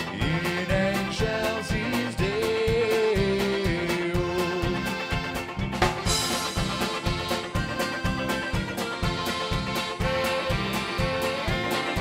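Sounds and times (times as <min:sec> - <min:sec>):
polka band playing: 0:00.0 - 0:12.0.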